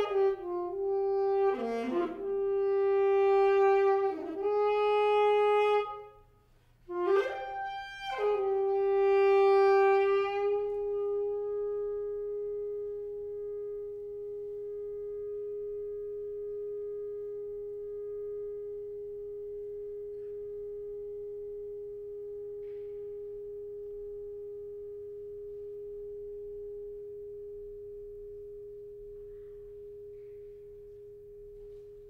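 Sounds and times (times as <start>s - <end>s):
alto saxophone long soft note: 0.0s - 32.0s.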